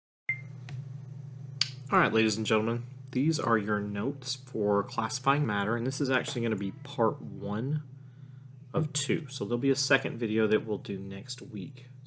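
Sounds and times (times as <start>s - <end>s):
low electrical hum: 0.3s - 12.0s
man speaking: 1.9s - 7.9s, 8.8s - 11.8s.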